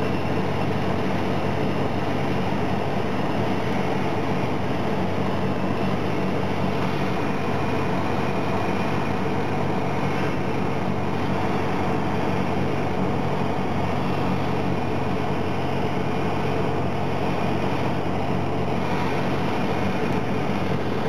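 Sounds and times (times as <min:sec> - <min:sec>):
light aircraft engine droning: 0:00.0 - 0:21.0.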